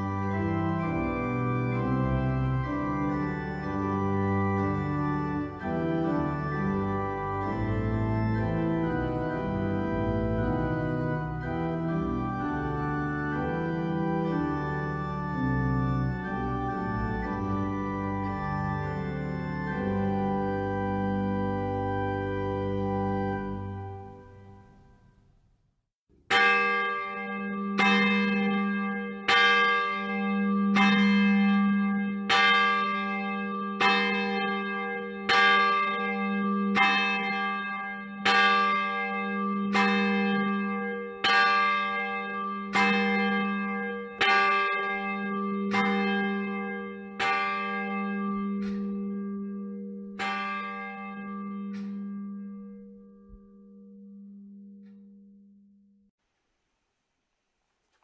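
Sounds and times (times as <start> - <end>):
church bell tolling: 0.0 - 25.0, 26.2 - 55.7.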